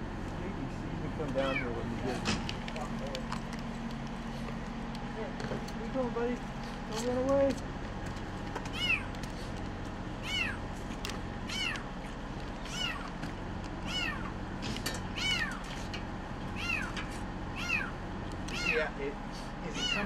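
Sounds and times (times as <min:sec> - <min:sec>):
kitten meowing: 0:01.4 - 0:01.8, 0:08.7 - 0:09.1, 0:10.2 - 0:10.6, 0:11.5 - 0:11.9, 0:12.6 - 0:13.1, 0:13.8 - 0:14.4, 0:15.2 - 0:15.6, 0:16.6 - 0:17.0, 0:17.6 - 0:17.9, 0:18.5 - 0:18.9, 0:19.7 - 0:20.0.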